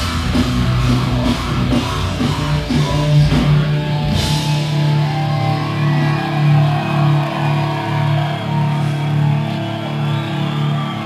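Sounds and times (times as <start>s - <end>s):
bass guitar: 0.0s - 11.0s
distorted electric guitars: 0.0s - 11.0s
drums: 0.0s - 11.0s.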